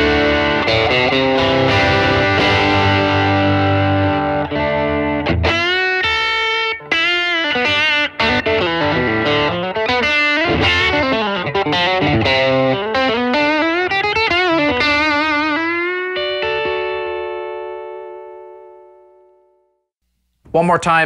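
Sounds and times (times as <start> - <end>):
overdriven electric guitar: 0.0 - 19.6.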